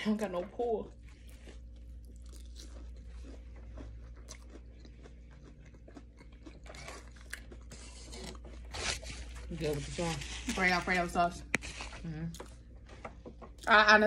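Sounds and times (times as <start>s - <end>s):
low steady hum: 0.0s - 14.0s
person chewing close up: 0.9s - 10.6s, 11.4s - 14.0s.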